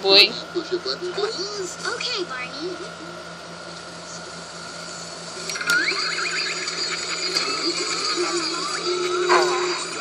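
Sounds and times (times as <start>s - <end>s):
faint steady whine: 0.0s - 10.0s
television voices and music: 0.0s - 10.0s.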